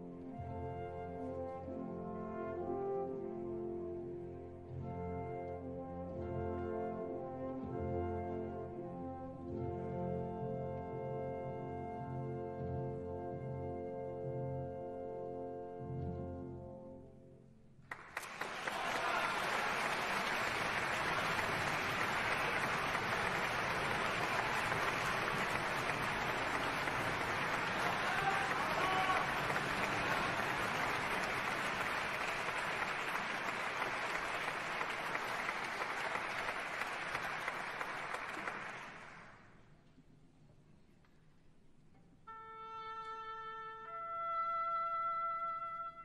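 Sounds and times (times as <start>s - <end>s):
audience applause: 17.9s - 39.5s.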